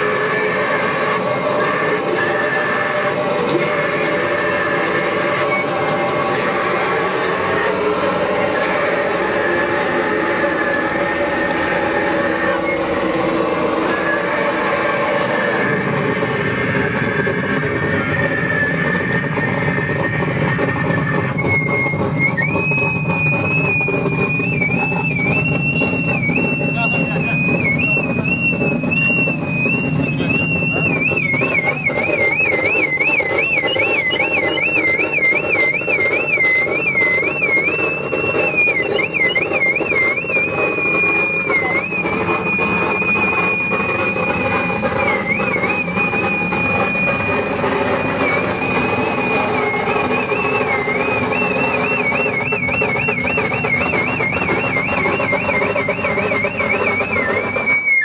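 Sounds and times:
wall of distorted noise: 0:00.0 - 0:58.0
wobbling high electronic tone: 0:00.0 - 0:58.0.

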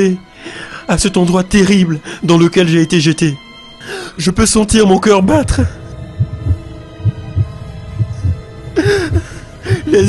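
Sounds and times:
faint music drone: 0:00.0 - 0:10.0
heartbeat thumps: 0:05.5 - 0:10.0.

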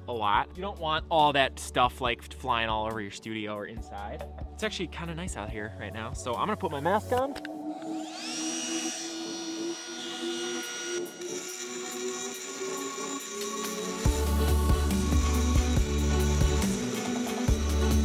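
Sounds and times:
rotary tool whining and grinding: 0:07.4 - 0:18.0.

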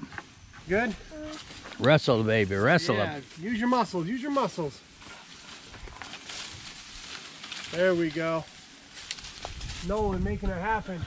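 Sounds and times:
branch dragged across grass: 0:01.2 - 0:10.4
twigs snapping: 0:05.4 - 0:07.9, 0:08.9 - 0:09.9.

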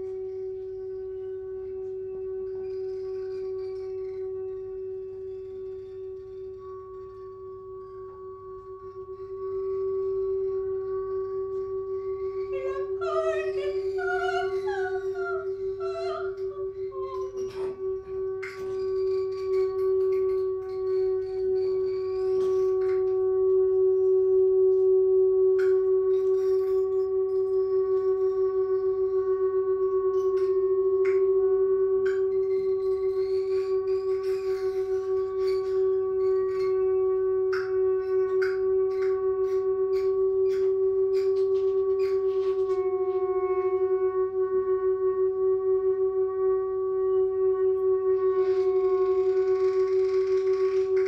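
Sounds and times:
held pitched tone: 0:04.0 - 0:24.5.

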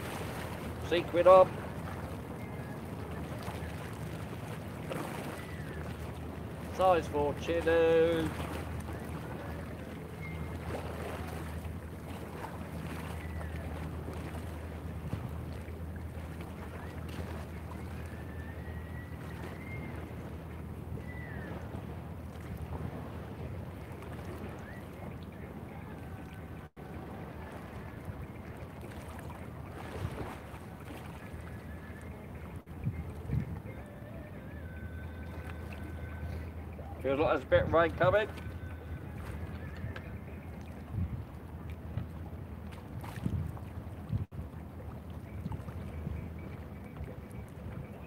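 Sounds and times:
boat engine droning: 0:00.0 - 0:48.0
wind on microphone: 0:08.2 - 0:37.1, 0:37.8 - 0:48.0.

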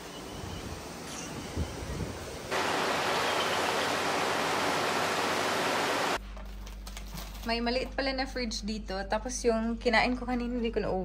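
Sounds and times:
loud steady rushing hiss: 0:00.0 - 0:06.2.

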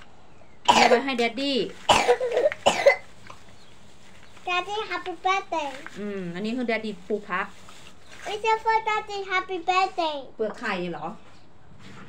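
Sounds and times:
harsh coughs: 0:00.7 - 0:01.0, 0:01.9 - 0:03.0.

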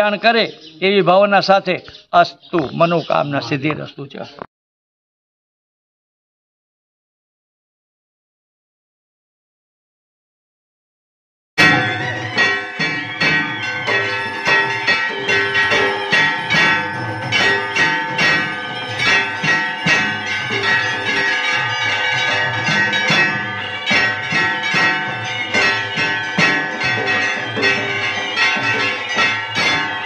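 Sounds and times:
temple bells ringing: 0:11.6 - 0:30.0.

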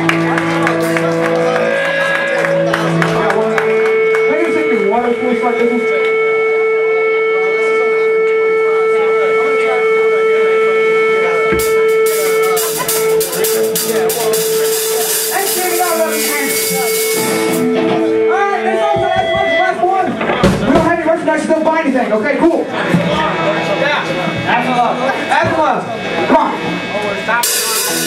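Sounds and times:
guitar and bass playing: 0:00.0 - 0:28.0
sustained electric guitar feedback: 0:00.0 - 0:28.0
drums and cymbals: 0:11.6 - 0:18.1, 0:27.4 - 0:28.0.

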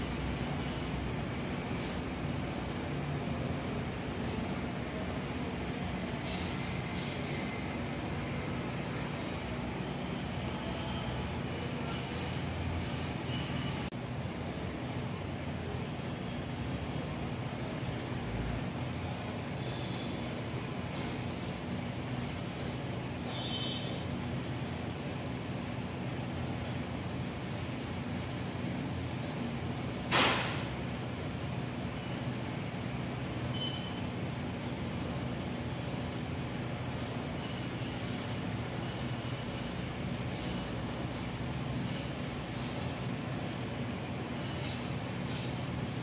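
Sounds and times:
thin high tone: 0:00.0 - 0:13.9.

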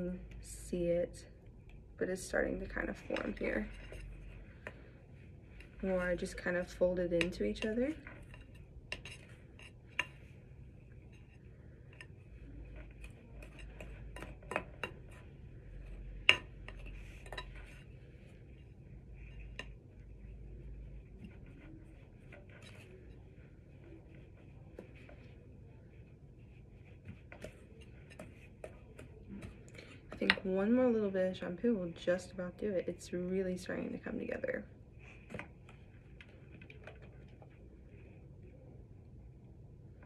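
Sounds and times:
spoon stirring thick slime: 0:01.2 - 0:38.6.

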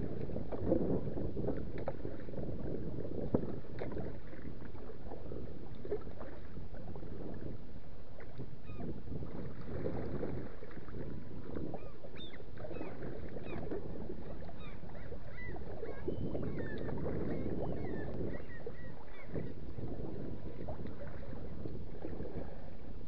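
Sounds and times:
water lapping against kayak: 0:00.0 - 0:23.0.

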